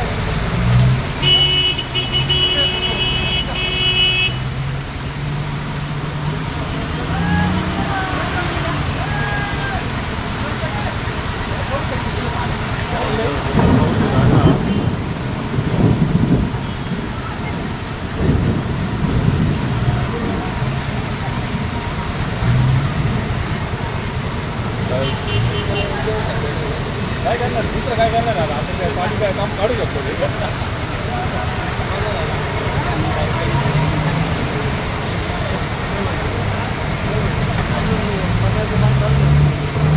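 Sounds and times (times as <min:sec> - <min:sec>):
floodwater rushing: 0:00.0 - 0:39.9
heavy rain pouring: 0:00.0 - 0:39.9
people talking: 0:01.2 - 0:04.3, 0:06.1 - 0:39.9
low rumbling: 0:04.5 - 0:39.9.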